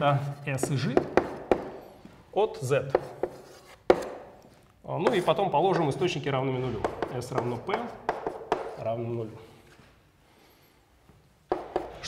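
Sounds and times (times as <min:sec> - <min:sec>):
chalk knocking on blackboard: 0:00.6 - 0:01.8, 0:02.9 - 0:04.3, 0:06.8 - 0:08.8, 0:11.5 - 0:12.0.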